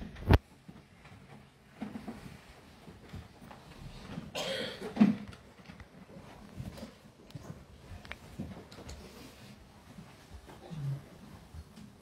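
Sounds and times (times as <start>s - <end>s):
person coughing: 4.3s - 5.1s.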